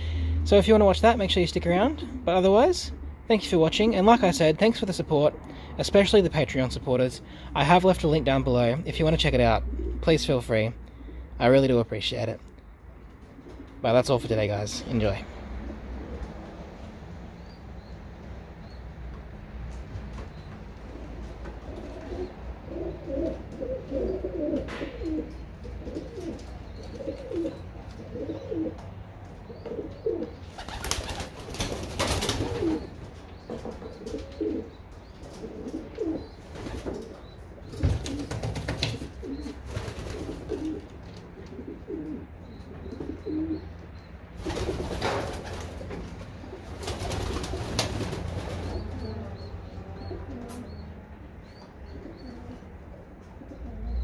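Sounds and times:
pigeons cooing: 0:01.8 - 0:03.2, 0:09.6 - 0:10.2, 0:10.9 - 0:11.3, 0:13.0 - 0:13.8, 0:15.2 - 0:17.9, 0:20.3 - 0:54.0
wings flapping: 0:30.5 - 0:32.9, 0:36.5 - 0:40.9, 0:44.4 - 0:49.1.

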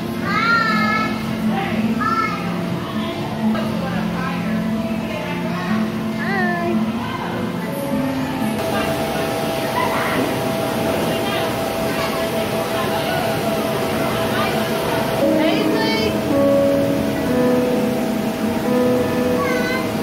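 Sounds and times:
children's voices: 0:00.0 - 0:03.8, 0:18.9 - 0:20.0
background music: 0:00.0 - 0:20.0
held piano notes: 0:00.1 - 0:20.0.

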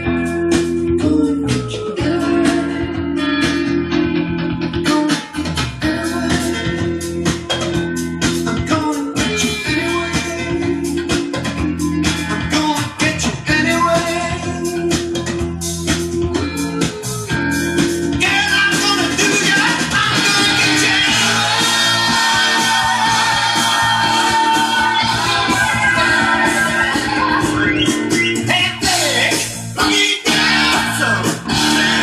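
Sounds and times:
guitar music from vinyl record: 0:00.0 - 0:32.0.

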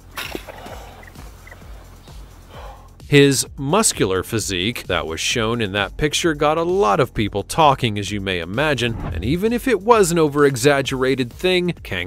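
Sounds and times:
faint bird calls: 0:00.0 - 0:02.8
low music: 0:00.0 - 0:12.0.

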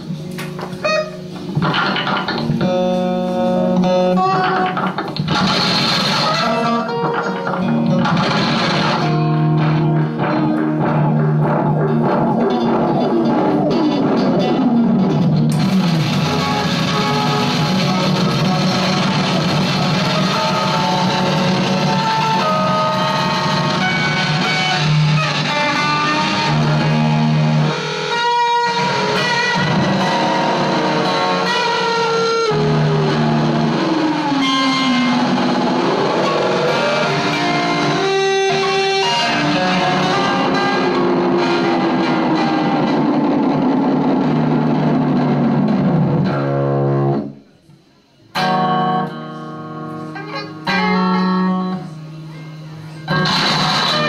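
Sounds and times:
electric guitar noise wash: 0:00.0 - 0:54.0.

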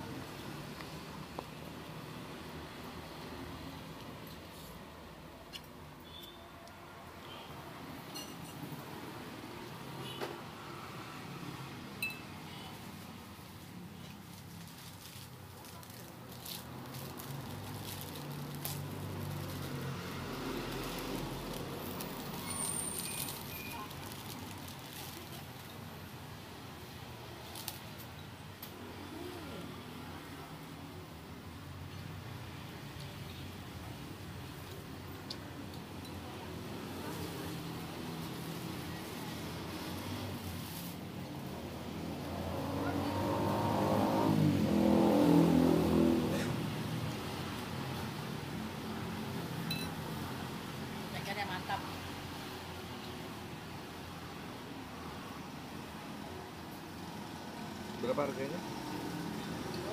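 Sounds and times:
traffic rumble: 0:00.0 - 0:59.9
vehicle engine accelerating past: 0:41.9 - 0:47.0.

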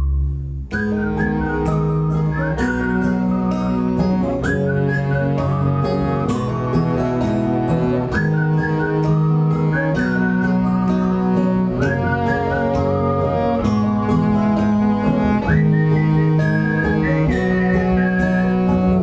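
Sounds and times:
acoustic guitar: 0:00.0 - 0:19.0
high wavering melody: 0:00.0 - 0:19.0.

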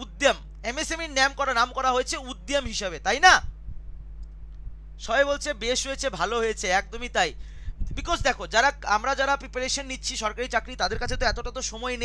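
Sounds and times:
low electrical hum: 0:00.0 - 0:12.0
faint soft clicks: 0:04.2 - 0:04.7.

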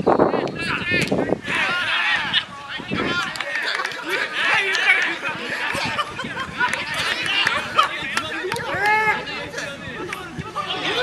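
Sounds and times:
men's voices chattering: 0:00.0 - 0:11.0.

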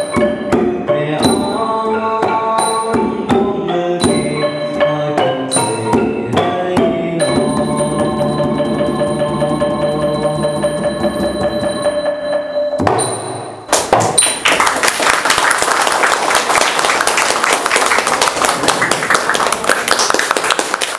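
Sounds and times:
xylophones played with mallets: 0:00.0 - 0:14.4
audience applause: 0:14.4 - 0:20.9.

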